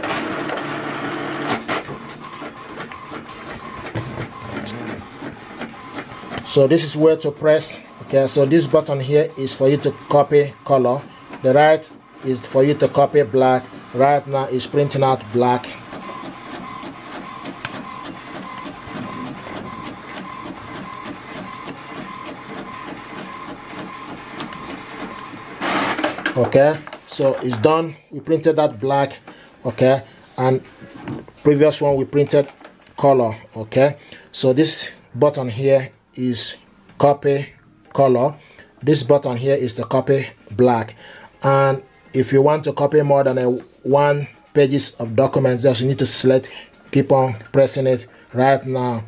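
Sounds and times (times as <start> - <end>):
printer mechanism running: 0.0 - 27.8
printer clicks: 15.9 - 27.6.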